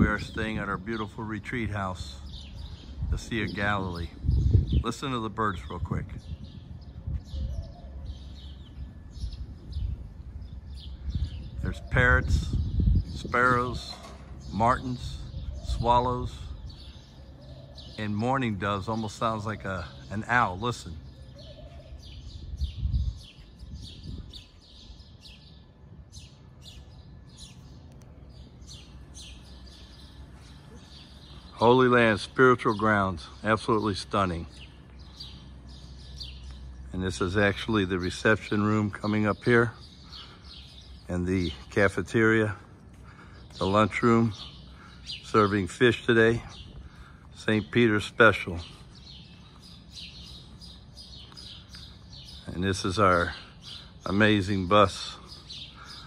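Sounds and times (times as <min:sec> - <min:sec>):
songbirds chirping: 0:00.0 - 0:56.0.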